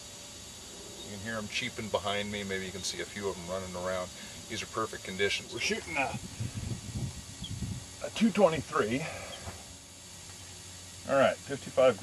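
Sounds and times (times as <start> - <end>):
background hiss and hum: 0.0 - 12.0
ground squirrels cheeping: 0.7 - 3.2, 7.4 - 7.8, 9.1 - 9.5.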